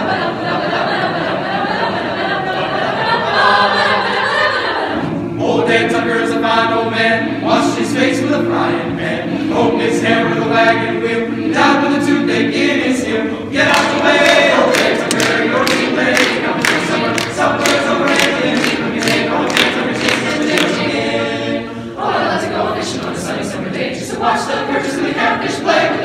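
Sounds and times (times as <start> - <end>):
chamber choir singing a cappella: 0.0 - 26.0.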